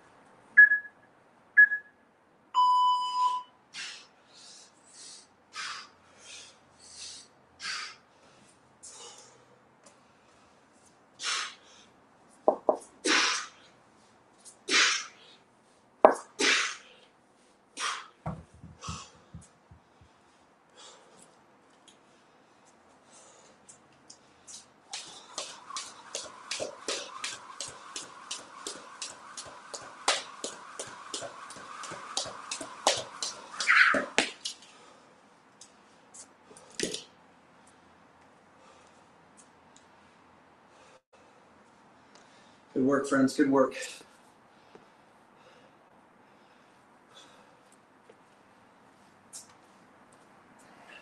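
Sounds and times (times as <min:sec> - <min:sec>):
jump rope slapping floor: 0:24.5 - 0:34.6.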